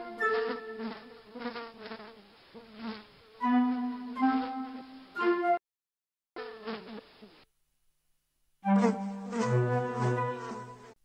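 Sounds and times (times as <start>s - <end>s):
housefly buzzing: 0.0s - 5.0s, 6.4s - 7.4s, 8.7s - 11.0s
sustained musical notes: 3.4s - 5.6s, 8.6s - 10.9s.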